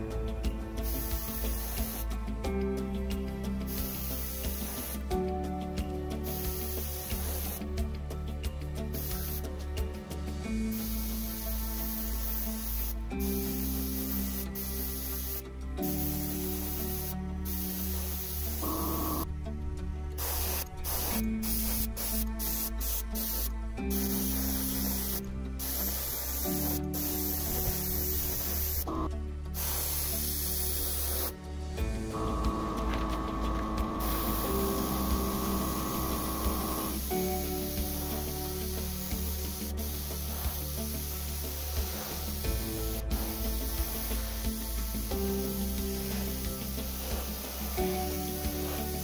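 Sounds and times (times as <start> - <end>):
background music with held chords: 0.0 - 49.0
spray gun hissing in bursts: 0.7 - 2.2, 3.6 - 5.2, 6.2 - 7.8, 8.9 - 9.7, 10.6 - 19.3, 20.2 - 31.4, 32.0 - 49.0.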